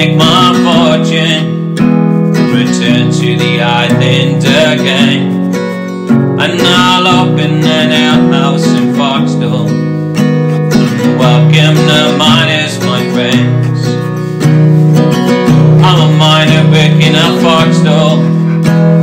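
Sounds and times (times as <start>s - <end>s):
acoustic guitar strumming: 0.0s - 19.0s
person singing: 0.0s - 19.0s.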